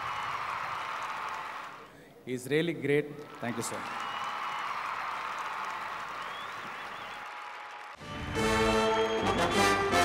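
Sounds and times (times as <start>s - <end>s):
audience applauding: 0.0s - 1.9s, 3.2s - 9.8s.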